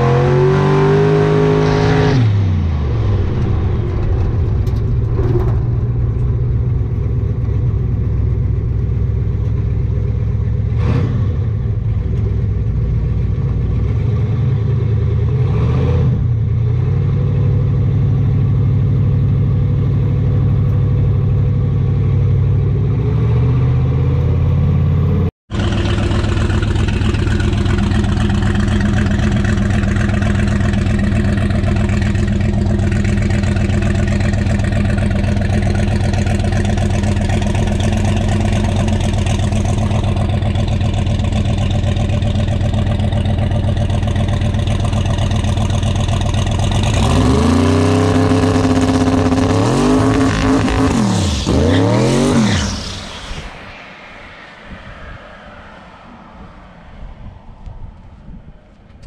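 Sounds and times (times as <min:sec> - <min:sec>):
truck engine running at low revs: 0:00.0 - 0:51.4
truck engine idling outside: 0:02.8 - 0:15.4, 0:23.8 - 0:47.0.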